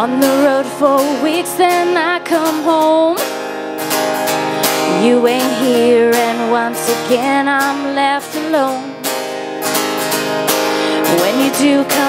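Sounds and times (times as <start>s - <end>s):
person singing: 0.0s - 3.3s, 4.7s - 9.2s, 10.8s - 12.0s
acoustic guitar strumming: 0.0s - 12.0s.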